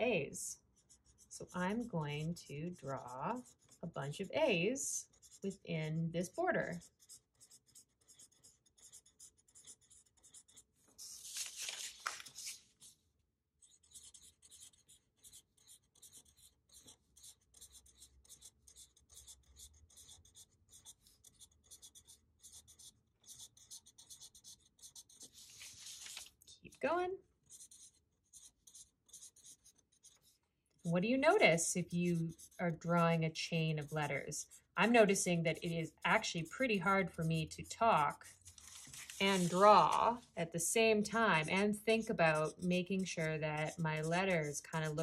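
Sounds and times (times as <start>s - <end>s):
marker drawing on paper: 0.1s - 45.0s.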